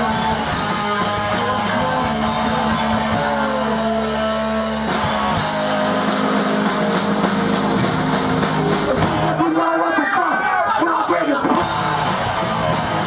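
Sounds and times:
punk band playing live: 0.0 - 13.0.

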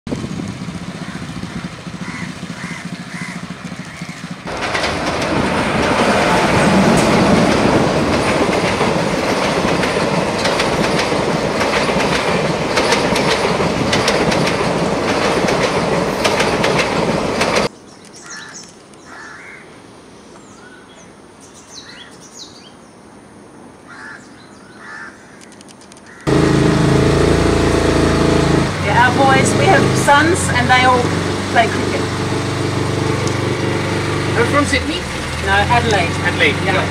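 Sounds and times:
boat engine humming: 0.1 - 17.7, 26.3 - 36.9
loud even rushing noise: 4.4 - 17.7
person speaking: 28.8 - 32.1.

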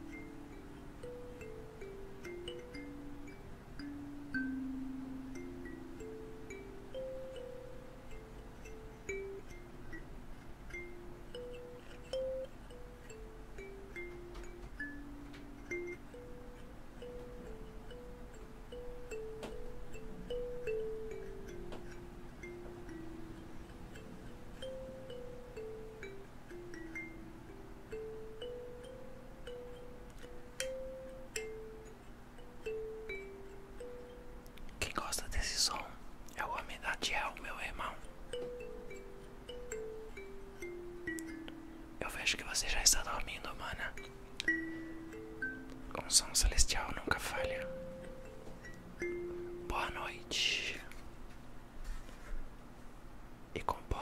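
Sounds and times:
bell-like mallet melody: 0.0 - 34.5, 37.5 - 50.8.

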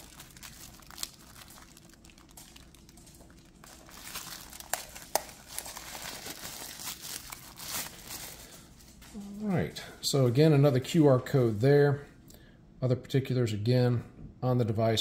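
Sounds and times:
plastic wrapping crinkling: 0.0 - 9.5.

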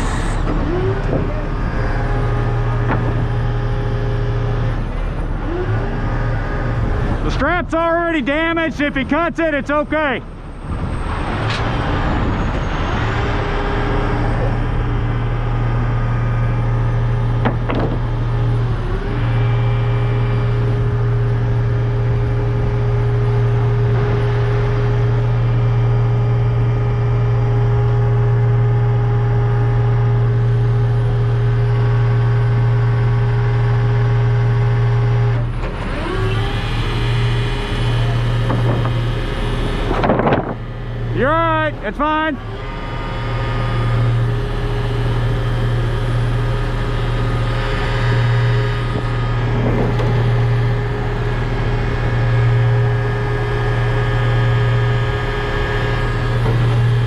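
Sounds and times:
diesel engine drone: 0.0 - 57.0.

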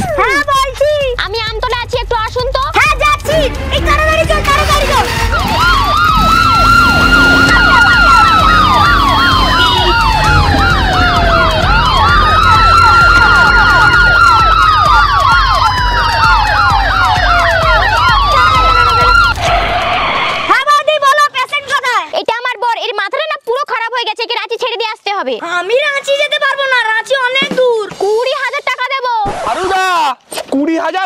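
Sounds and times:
low rumble: 3.3 - 20.5
ambulance siren wailing: 3.9 - 20.6
fast yelping siren warble: 4.6 - 20.8.

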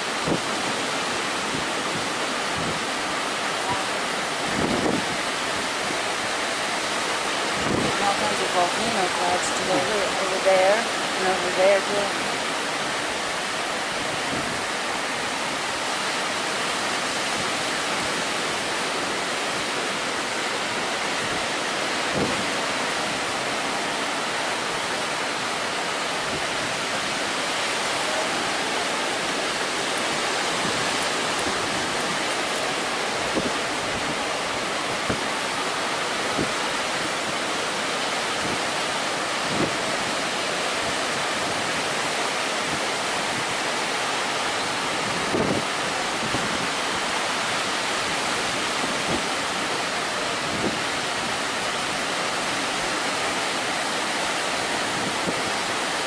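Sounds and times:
surf washing onto beach: 0.0 - 56.0.

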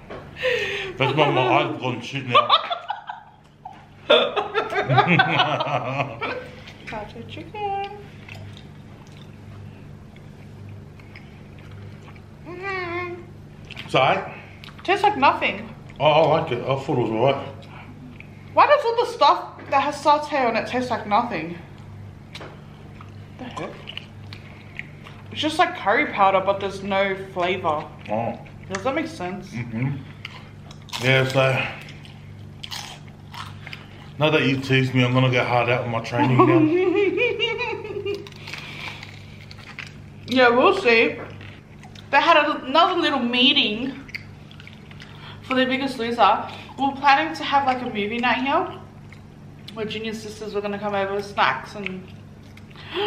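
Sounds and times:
steady low hum: 0.0 - 53.0
chewing and mouth sounds: 7.8 - 12.4, 13.6 - 14.9, 21.7 - 25.4, 27.3 - 29.0, 30.0 - 34.2, 38.1 - 40.4, 41.2 - 42.1, 43.8 - 45.5, 47.6 - 49.8, 51.7 - 52.9.

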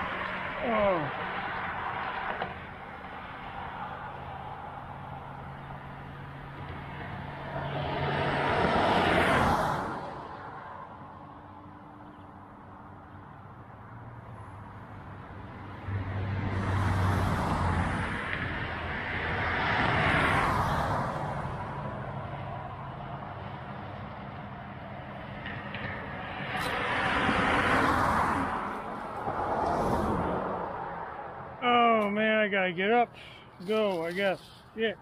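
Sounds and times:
vehicles passing: 0.0 - 35.0.

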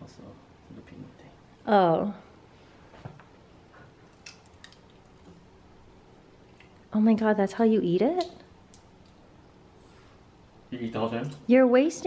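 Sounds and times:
peanut shell cracking: 4.1 - 5.2.

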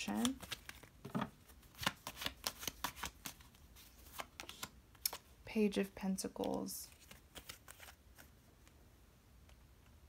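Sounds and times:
cards being shuffled: 0.1 - 5.3, 6.4 - 8.8.

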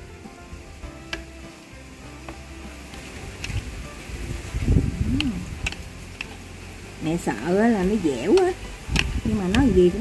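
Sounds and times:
soft background music: 0.0 - 10.0
chopsticks clicking against steel bowl: 5.2 - 6.4.

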